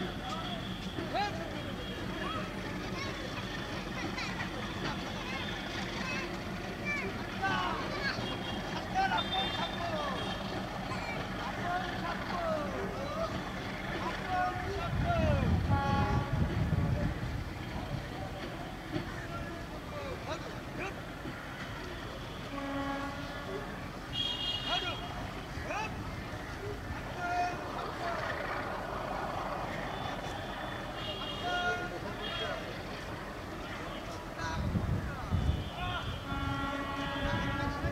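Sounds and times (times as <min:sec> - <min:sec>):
deep train rumble: 0:00.0 - 0:37.9
voices calling and chattering: 0:00.0 - 0:37.9.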